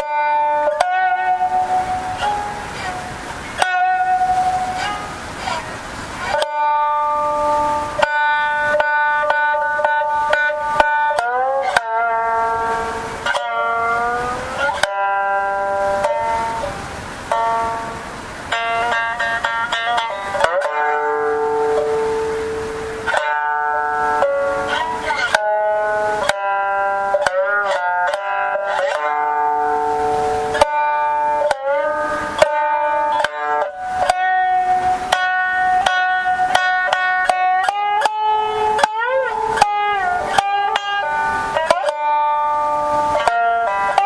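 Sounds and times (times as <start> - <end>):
plucked shamisen notes: 0.0 - 44.0.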